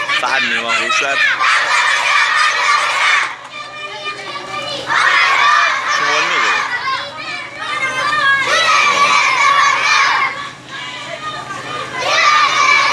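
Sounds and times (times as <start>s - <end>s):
children's voices calling out: 0.0s - 12.9s.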